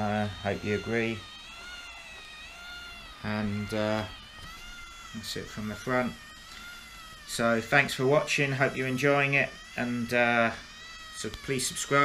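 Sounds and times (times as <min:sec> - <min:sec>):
motor and cogs whining: 0:00.0 - 0:12.0.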